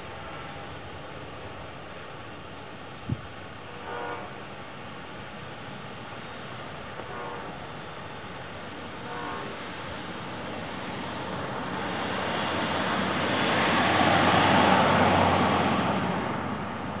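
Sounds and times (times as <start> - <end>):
train rumbling: 0.0 - 17.0
train horn: 3.6 - 4.6, 7.0 - 7.8, 8.8 - 10.0.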